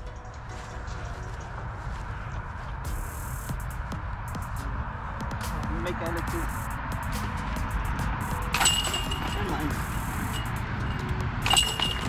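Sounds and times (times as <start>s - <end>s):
discs clinking on metal basket: 8.6s - 10.6s, 11.4s - 12.0s.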